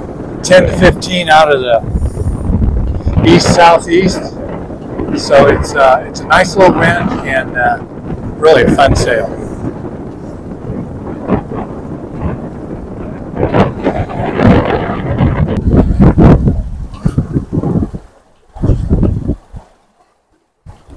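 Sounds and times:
water rushing along hull: 0.0s - 20.9s
wind buffeting microphone: 0.0s - 20.9s.

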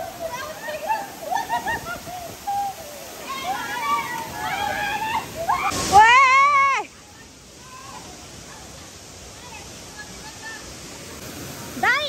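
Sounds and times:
women squealing and laughing: 0.0s - 6.9s
small waterfall rushing: 0.0s - 12.0s.

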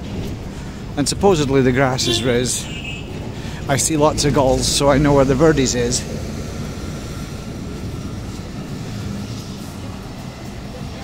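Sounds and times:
bus engines running: 0.0s - 11.0s
street traffic rumble: 0.0s - 11.0s.

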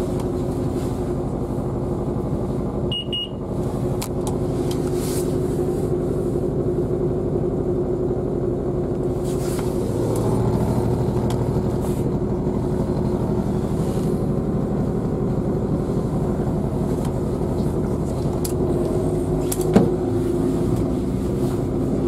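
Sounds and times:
train rumble and hum: 0.0s - 22.0s.

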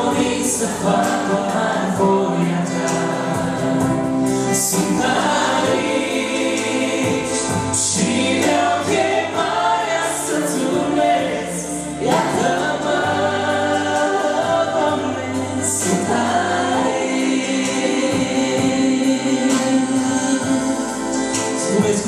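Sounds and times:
man singing: 0.0s - 9.4s, 14.2s - 22.0s
instrumental backing: 0.0s - 22.0s.

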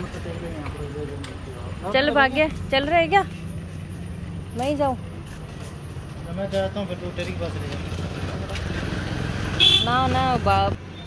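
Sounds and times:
motor vehicle running: 0.0s - 11.0s
street traffic rumble: 0.0s - 11.0s.

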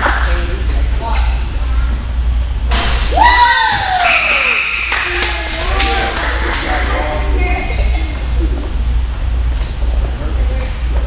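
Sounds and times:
low hum: 0.0s - 11.0s
people shouting and talking: 3.0s - 8.8s.

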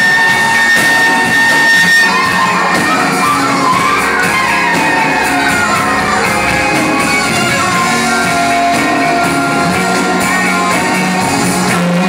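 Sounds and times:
live band music: 0.0s - 12.0s
wavering melody line: 1.5s - 11.2s.

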